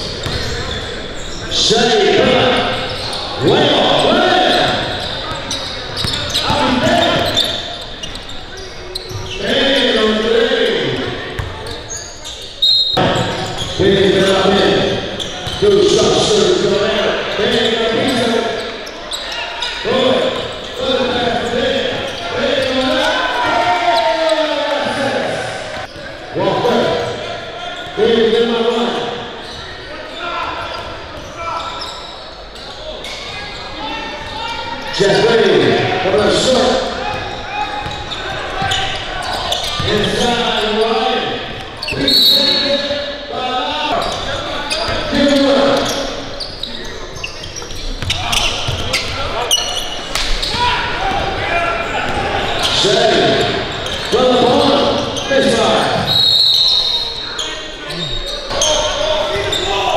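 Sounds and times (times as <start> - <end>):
indistinct shouts and chatter: 0.0 - 59.9.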